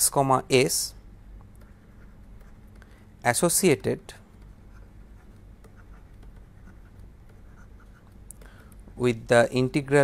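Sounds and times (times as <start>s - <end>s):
low steady hum: 0.0s - 10.0s
stylus tapping on screen: 1.4s - 3.0s, 3.6s - 9.0s.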